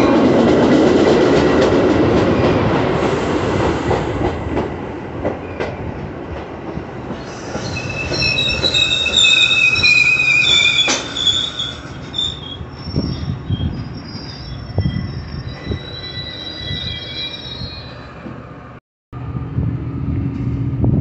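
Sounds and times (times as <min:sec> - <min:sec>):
train wheels rumbling on rails: 0:00.0 - 0:21.0
high squeal of train brakes: 0:07.2 - 0:18.2.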